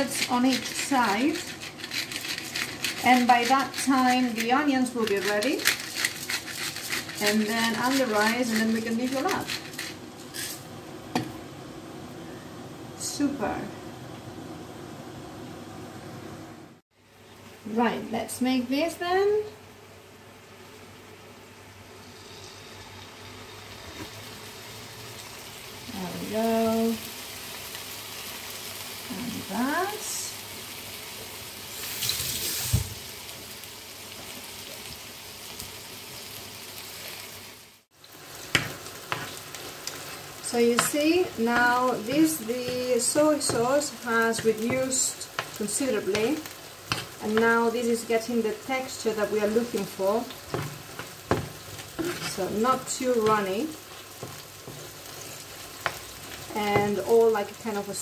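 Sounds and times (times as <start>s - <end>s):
fish sizzling in hot oil: 0.0s - 10.7s, 21.9s - 57.8s.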